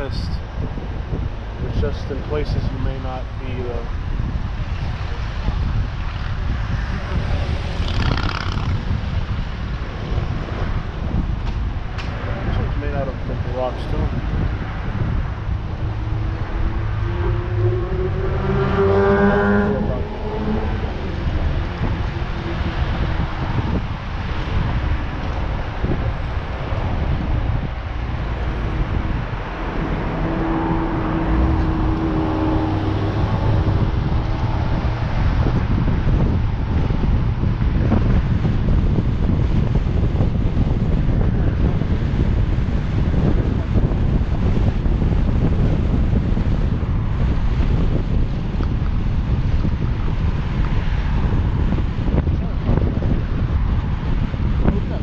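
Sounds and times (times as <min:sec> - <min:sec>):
car engine and tyre noise: 0:00.0 - 0:55.0
wind buffeting microphone: 0:00.0 - 0:55.0
passing engine tone: 0:13.8 - 0:23.9, 0:25.8 - 0:37.4.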